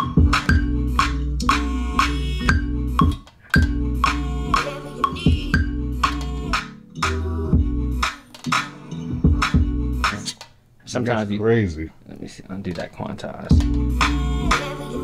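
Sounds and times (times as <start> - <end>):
chopped music sample: 0.0 - 10.3.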